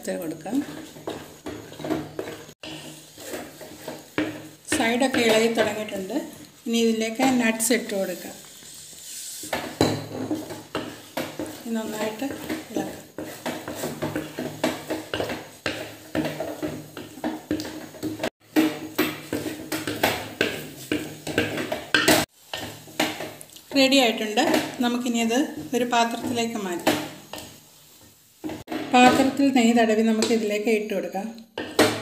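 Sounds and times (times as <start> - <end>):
spoon scraping a metal pot: 0.0 - 27.6.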